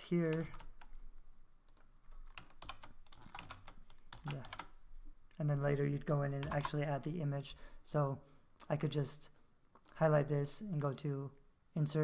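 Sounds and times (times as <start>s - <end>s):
computer keyboard keys clicking: 1.7s - 4.7s, 6.4s - 6.8s.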